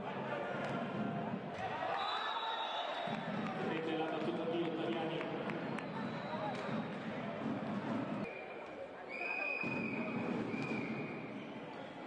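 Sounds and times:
high steady whistle tone: 0:08.2 - 0:12.0.

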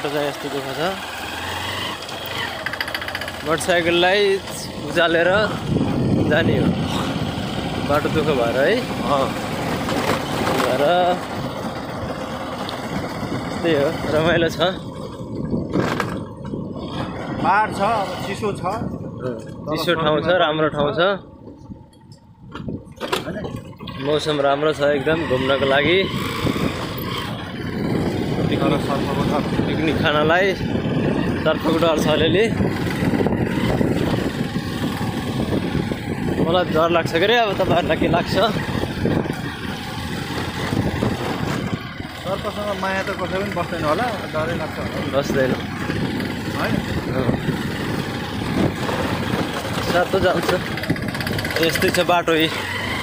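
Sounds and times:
motorcycle engine running: 0:00.0 - 0:53.0
man talking: 0:03.4 - 0:07.0, 0:07.8 - 0:09.4, 0:23.2 - 0:26.1, 0:28.4 - 0:30.7, 0:31.3 - 0:32.6, 0:36.4 - 0:38.7, 0:42.2 - 0:45.7, 0:49.8 - 0:50.7, 0:51.5 - 0:52.6.

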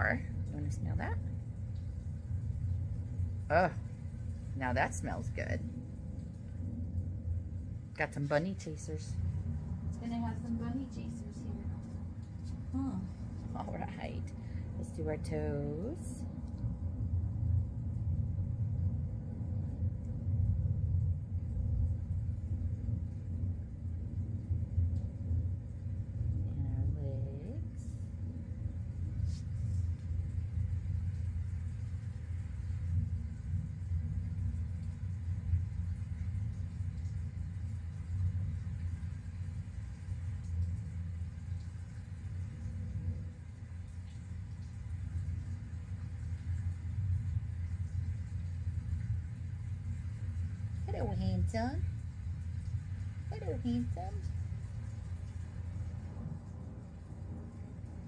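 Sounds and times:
low rumble of thunder: 0:00.0 - 0:58.0.

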